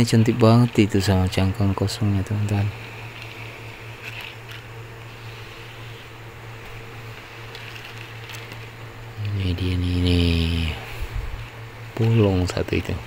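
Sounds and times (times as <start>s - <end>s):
steady low hum: 0.0s - 13.0s
shells clicking and scraping: 2.9s - 8.8s.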